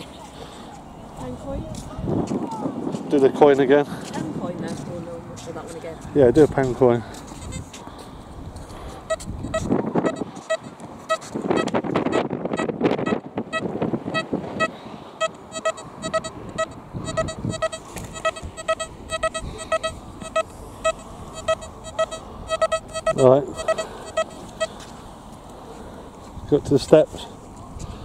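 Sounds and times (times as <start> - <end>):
wind noise on microphone: 1.2 - 24.7
metal detector beeping: 9.0 - 24.8.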